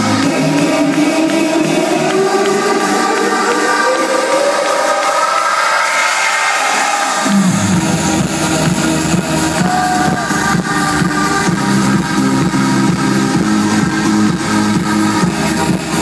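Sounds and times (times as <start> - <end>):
electronic dance music: 0.0 - 16.0
heavy bass drop: 7.2 - 16.0.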